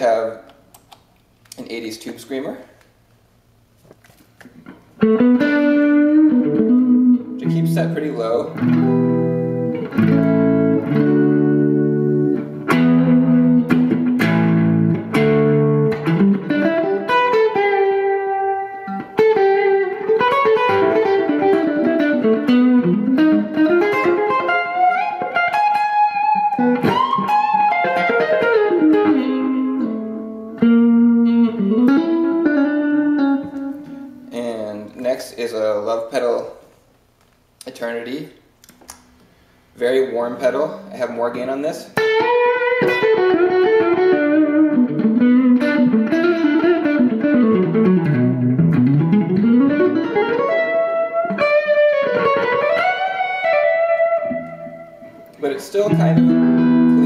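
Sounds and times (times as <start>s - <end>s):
overdriven electric guitar: 4.6s - 34.3s, 42.0s - 57.0s.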